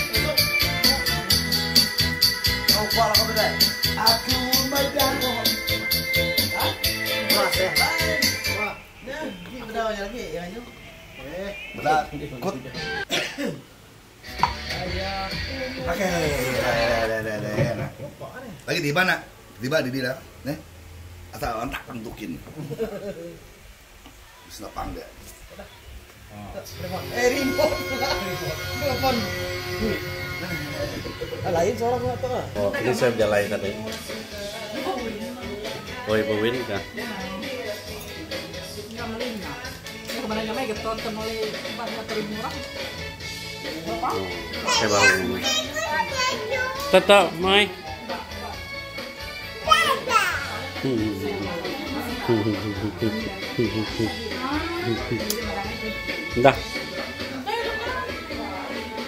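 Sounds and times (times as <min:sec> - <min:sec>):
music playing: 0:00.0 - 0:13.1, 0:14.2 - 0:17.6, 0:26.7 - 0:59.0
child's high-pitched voice: 0:44.7 - 0:47.0, 0:49.6 - 0:50.6.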